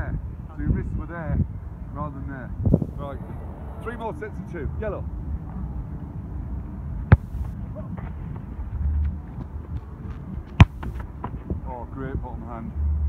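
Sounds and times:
wind rumble on microphone: 0.0 - 13.0
football kicked hard: 7.1 - 8.1, 10.4 - 11.6.

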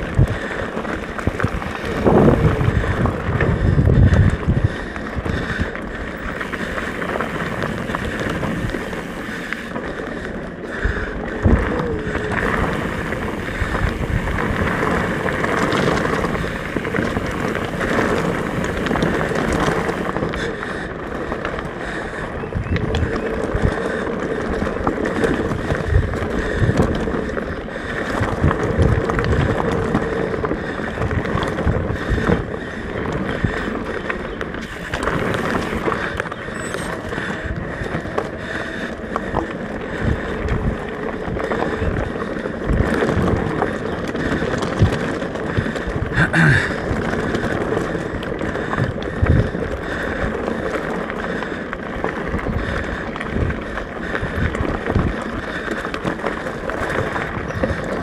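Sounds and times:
bike tyre noise: 0.0 - 58.0
low thumps from trail bumps: 0.0 - 58.0
wind rush on microphone: 0.0 - 58.0.

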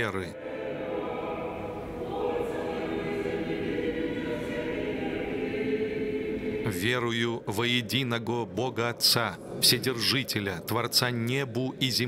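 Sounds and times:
choir singing unaccompanied chant: 0.2 - 7.8.

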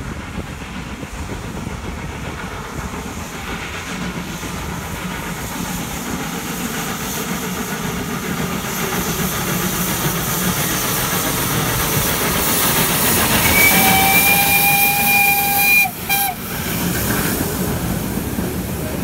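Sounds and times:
steam locomotive exhaust chuffing: 0.0 - 19.0.

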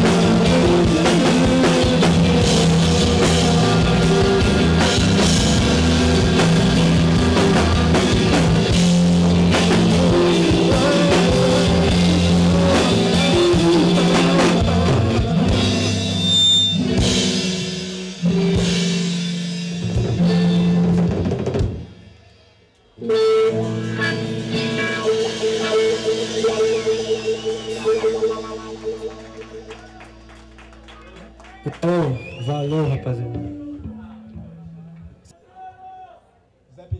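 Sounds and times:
rock band playing: 0.0 - 35.3.

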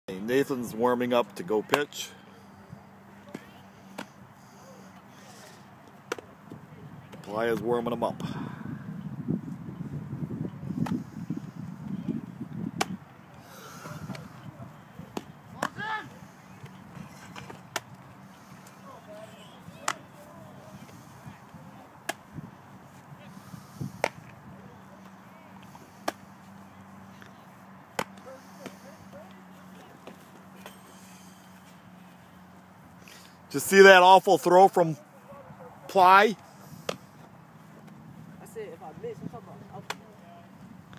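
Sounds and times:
baseball smacking into glove: 24.0 - 24.4.

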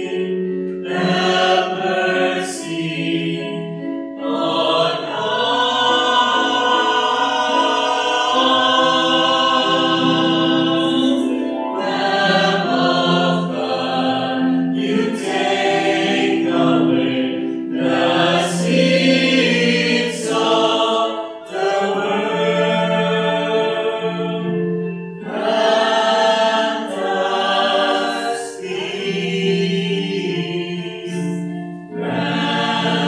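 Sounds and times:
choir singing a slow chant: 0.0 - 33.0.

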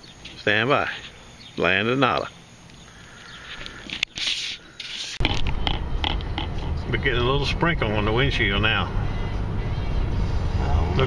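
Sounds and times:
car interior road rumble: 5.2 - 11.0.

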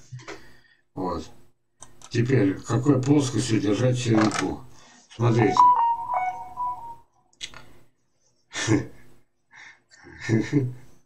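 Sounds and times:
short electronic beeps: 5.4 - 7.0.

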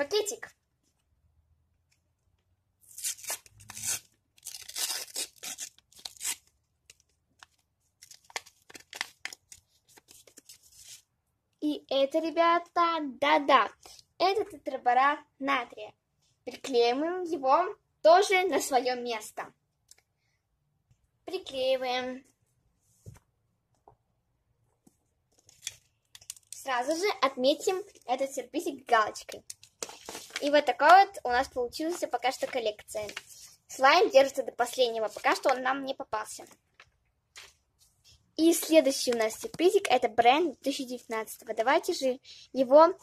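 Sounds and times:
paper tearing: 2.9 - 6.5
paper rustling: 3.4 - 11.0, 29.3 - 30.9, 31.7 - 33.6.

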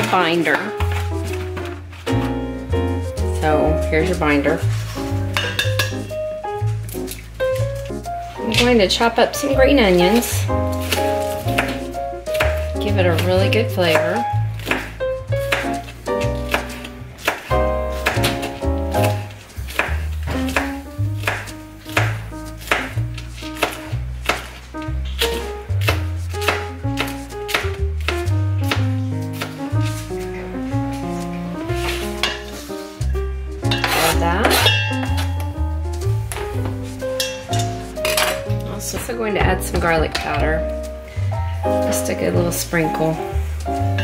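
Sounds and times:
background music with bass line: 0.8 - 44.0
knife chopping on plastic board: 10.8 - 24.5, 25.2 - 29.6.

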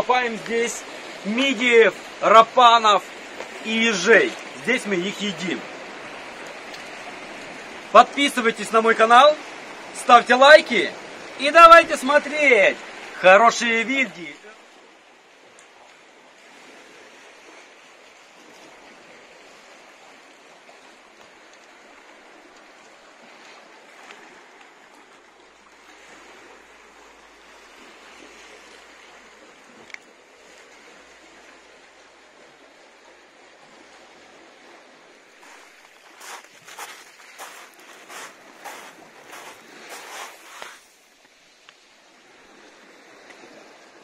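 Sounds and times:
calm sea washing over rocks: 0.0 - 44.0.

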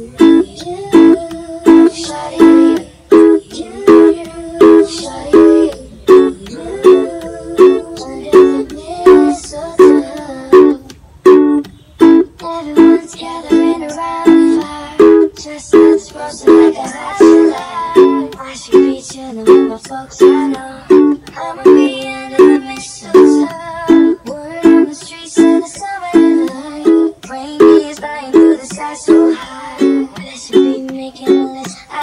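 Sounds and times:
percussive taps on ukulele: 0.0 - 32.0
ukulele strumming: 0.0 - 32.0.

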